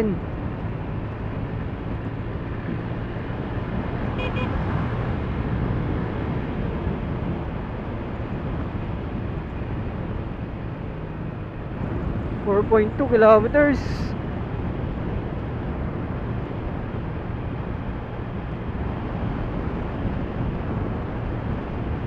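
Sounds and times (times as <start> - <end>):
road and wind noise: 0.0 - 22.0.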